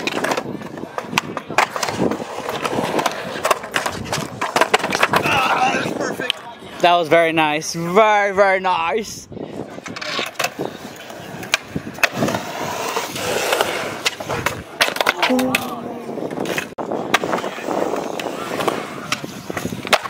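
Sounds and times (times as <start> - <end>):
skateboards striking ground: 0.0 - 8.0, 9.0 - 20.0
skateboard wheels rolling on concrete: 0.0 - 20.0.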